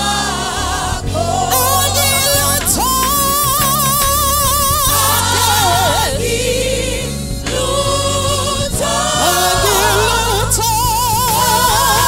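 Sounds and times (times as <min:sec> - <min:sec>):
group singing in harmony: 0:00.0 - 0:12.0
lead voice singing: 0:00.0 - 0:12.0.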